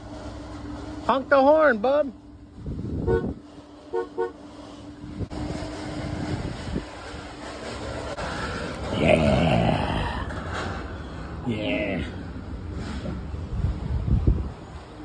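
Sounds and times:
car horn toots: 3.0s - 4.4s.

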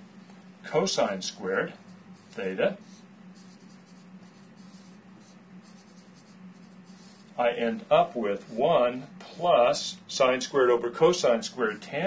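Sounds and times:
steady low hum: 0.0s - 12.0s
marker scratching on whiteboard: 0.7s - 8.7s.

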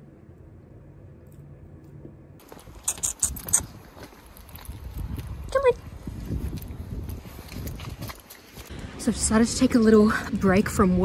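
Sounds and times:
footsteps on a footpath: 2.4s - 8.8s
short rising squeak: 2.8s - 3.7s.

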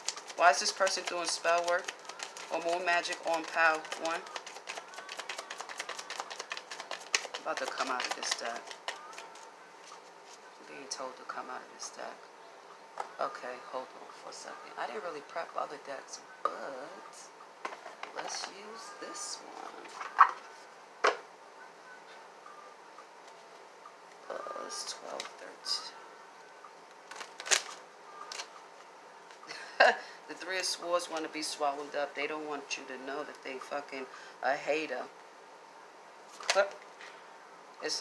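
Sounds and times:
cards being shuffled: 0.0s - 10.6s, 27.0s - 29.4s.

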